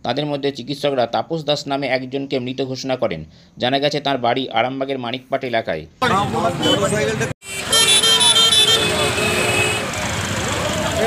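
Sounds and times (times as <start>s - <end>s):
crowd talking and calling out: 6.0s - 11.0s
traffic noise: 6.0s - 11.0s
vehicle horn: 6.6s - 10.0s.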